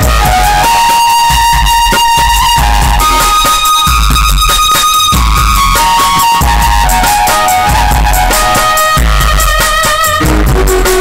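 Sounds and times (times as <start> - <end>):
drum accompaniment: 0.0 - 11.0
violin melody: 0.0 - 11.0.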